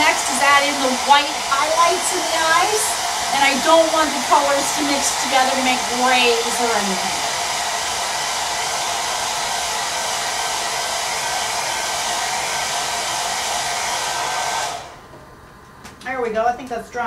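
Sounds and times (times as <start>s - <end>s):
hair dryer running: 0.0s - 15.3s.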